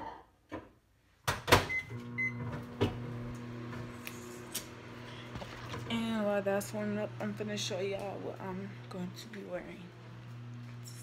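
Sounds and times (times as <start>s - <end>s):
microwave humming: 1.3s - 11.0s.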